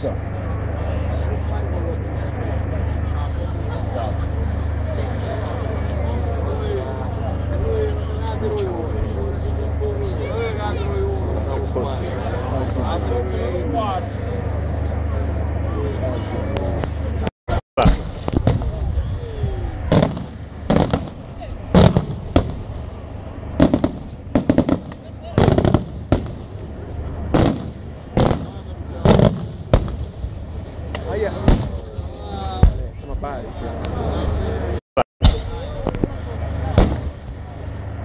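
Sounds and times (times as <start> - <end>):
steady low hum: 0.0 - 38.0
voices: 0.0 - 38.0.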